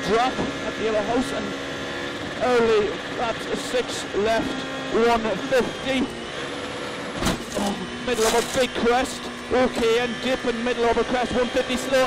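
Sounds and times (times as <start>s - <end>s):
car engine running at speed: 0.0s - 12.0s
gravel and tyre noise: 0.0s - 12.0s
thump: 7.2s - 7.7s.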